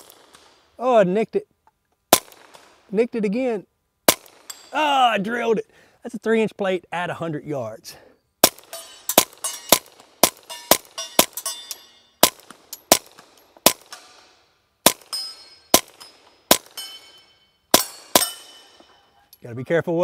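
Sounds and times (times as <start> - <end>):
suppressed pistol shots: 0.0 - 0.6, 2.1 - 2.8, 4.1 - 4.7, 8.4 - 18.8.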